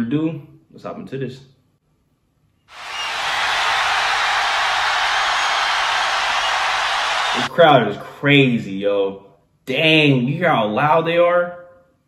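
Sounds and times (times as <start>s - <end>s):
stadium crowd cheering: 2.7s - 7.5s.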